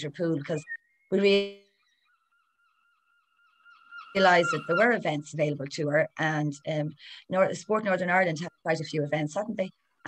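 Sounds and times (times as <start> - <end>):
faint two-tone high whine: 0.0 - 10.0.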